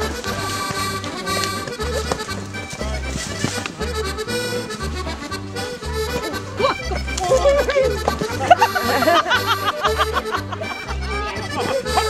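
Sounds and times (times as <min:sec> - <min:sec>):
instrumental music with bass line: 0:00.0 - 0:12.0.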